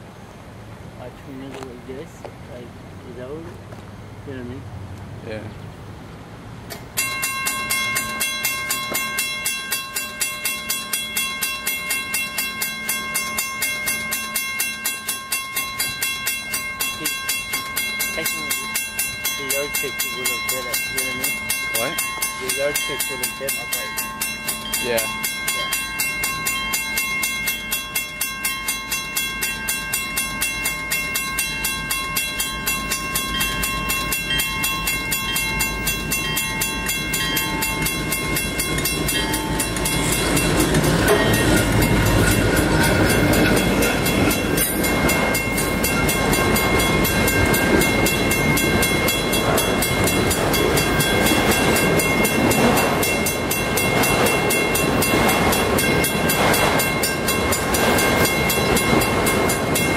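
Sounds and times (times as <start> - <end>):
diesel freight train passing: 0.0 - 59.9
wheels clattering on rails: 1.0 - 3.9, 6.6 - 59.9.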